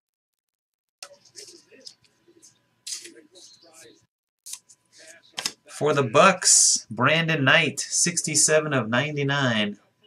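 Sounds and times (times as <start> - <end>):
cards rustling: 2.9 - 3.2
man speaking: 5.0 - 9.8.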